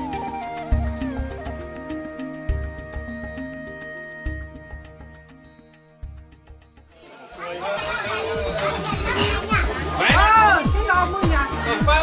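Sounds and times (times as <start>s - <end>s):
people chattering: 7.0s - 12.0s
electronic dance music: 7.4s - 12.0s.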